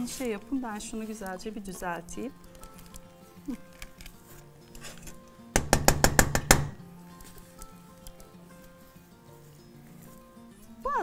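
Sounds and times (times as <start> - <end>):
soft background music: 0.0 - 11.0
metal spoon knocking on bowl: 5.6 - 6.8.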